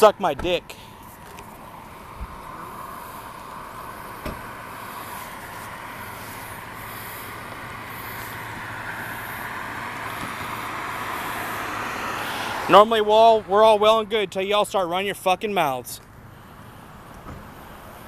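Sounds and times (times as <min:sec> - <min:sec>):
road traffic noise: 0:00.0 - 0:18.0.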